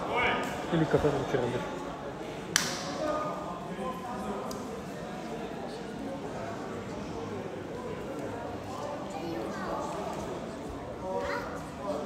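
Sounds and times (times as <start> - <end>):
people talking and calling out: 0.0 - 12.0.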